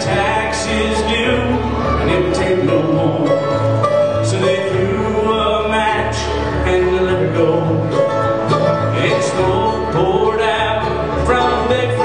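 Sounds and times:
acoustic bluegrass band playing: 0.0s - 12.0s
picked guitar: 0.0s - 12.0s.

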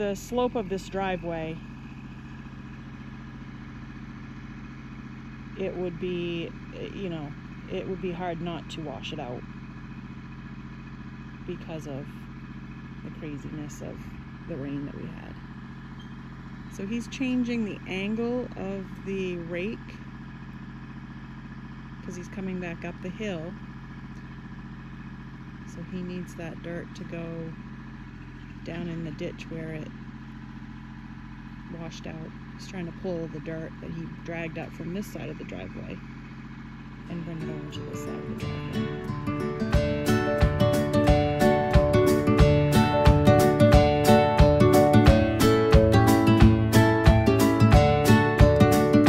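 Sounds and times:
woman speaking: 0.0s - 1.6s, 5.6s - 9.4s, 11.4s - 12.2s, 13.0s - 15.4s, 16.7s - 20.0s, 22.1s - 23.6s, 25.7s - 27.6s, 28.6s - 29.9s, 31.7s - 36.0s, 37.1s - 38.9s
distant tractor diesel engine: 0.0s - 49.0s.

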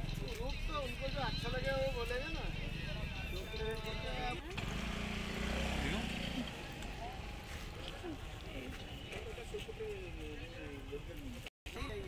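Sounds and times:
market crowd voices: 0.0s - 12.0s.

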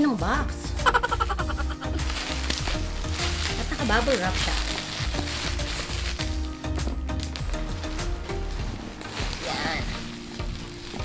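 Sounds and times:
bubble wrap crackles: 0.5s - 11.0s
bubble wrap crinkling and tearing: 0.6s - 11.0s.

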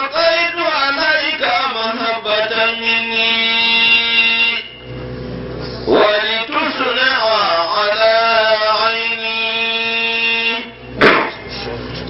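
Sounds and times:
voice chanting a long note: 0.0s - 5.0s, 5.8s - 11.8s.

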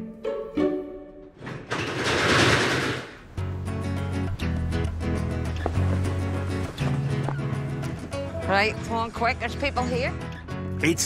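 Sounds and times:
roller shutter slats rattling: 1.4s - 3.4s.

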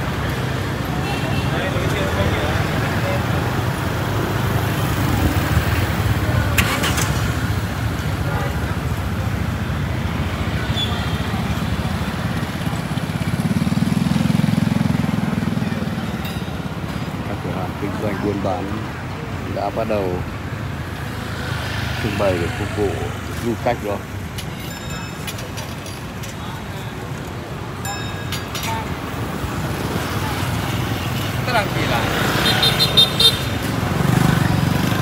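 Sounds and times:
people chattering: 0.0s - 35.0s
traffic rumble: 0.0s - 35.0s.

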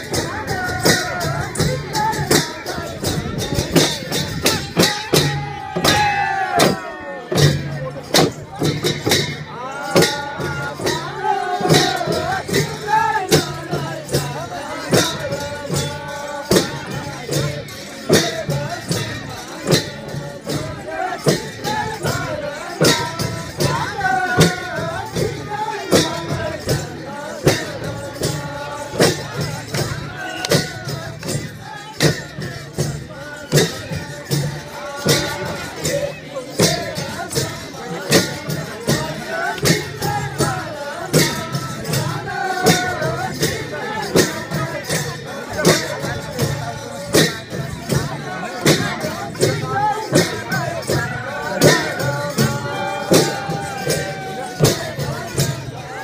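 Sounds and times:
hand percussion beat: 0.0s - 56.0s
people singing: 0.0s - 56.0s.

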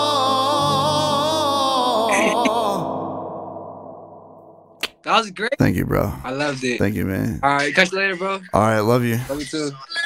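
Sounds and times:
man singing with vibrato: 0.0s - 3.8s
keyboard chord ringing: 2.8s - 4.8s.

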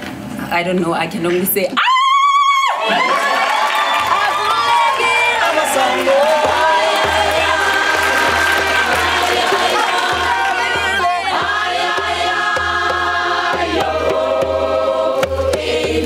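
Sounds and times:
drum pulsing: 4.1s - 16.0s
group singing in harmony: 4.1s - 16.0s.

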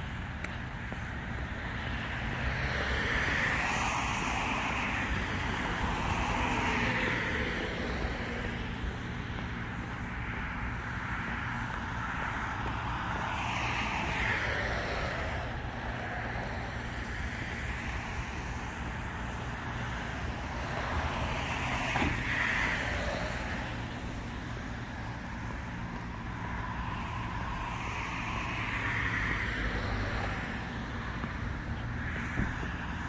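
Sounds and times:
traffic passing on wet road: 0.0s - 33.0s.

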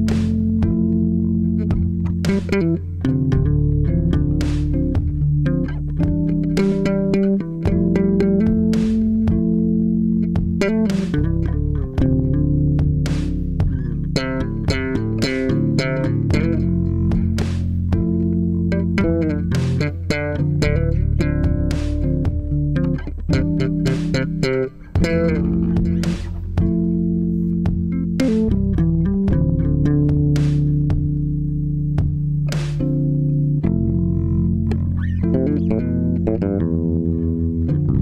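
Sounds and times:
backing track: 0.0s - 38.0s
electric bass guitar groove: 0.0s - 38.0s
held chords: 0.0s - 38.0s.

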